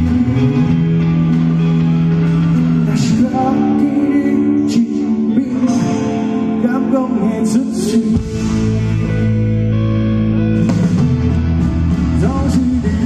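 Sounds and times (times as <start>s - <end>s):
rock band playing live: 0.0s - 13.0s
person singing: 2.7s - 8.8s, 12.0s - 13.0s.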